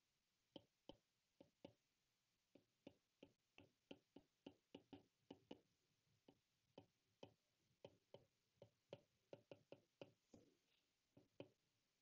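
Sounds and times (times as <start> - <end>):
stylus tapping on glass screen: 2.5 - 10.2, 11.2 - 11.6.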